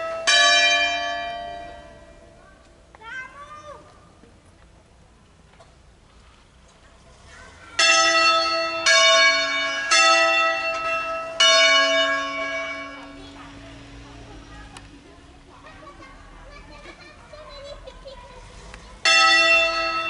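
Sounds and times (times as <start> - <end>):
church bells ringing: 0.0 - 2.6, 7.8 - 14.5, 19.0 - 20.0.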